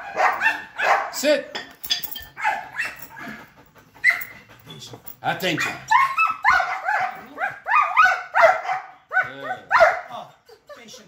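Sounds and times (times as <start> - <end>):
dog barking sharply: 0.0 - 1.2, 5.6 - 8.9, 9.7 - 10.1.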